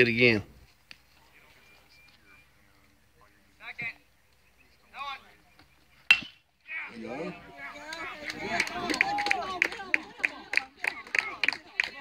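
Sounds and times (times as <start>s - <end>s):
bat hitting baseball: 6.1s - 6.4s
spectators shouting and cheering: 6.7s - 12.0s.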